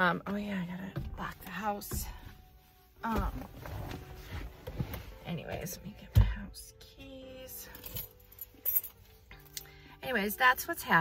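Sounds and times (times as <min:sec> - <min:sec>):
soft background music: 0:00.0 - 0:11.0
house keys jingling: 0:07.7 - 0:09.5.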